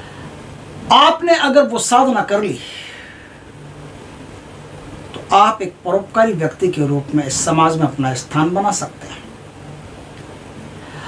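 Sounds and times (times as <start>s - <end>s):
faint hum: 0.0s - 11.0s
low background rumble: 0.0s - 11.0s.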